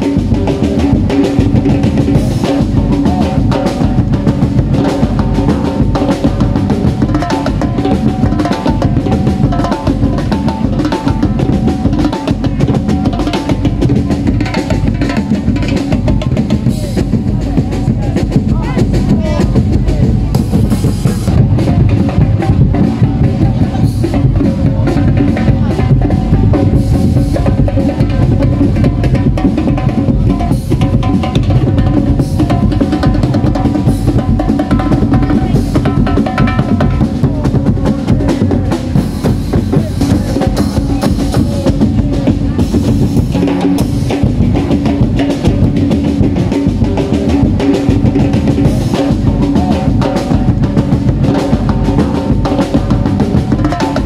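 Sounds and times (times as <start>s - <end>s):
drum-heavy dance music: 0.0s - 54.0s.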